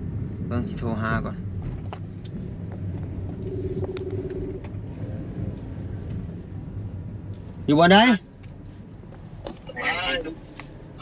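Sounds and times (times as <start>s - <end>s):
car engine rumble inside cabin: 0.0s - 11.0s.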